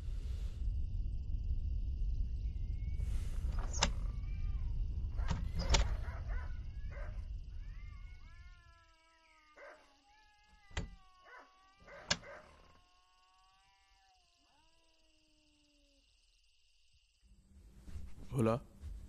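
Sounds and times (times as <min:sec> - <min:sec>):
low wind rumble: 0:00.0 - 0:08.7
wooden windows shutting and latching: 0:03.4 - 0:04.1, 0:05.2 - 0:06.2, 0:10.7 - 0:11.0.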